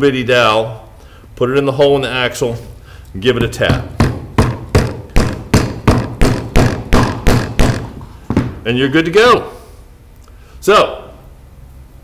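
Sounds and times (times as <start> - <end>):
wooden mallet knocking wood: 3.4 - 8.6.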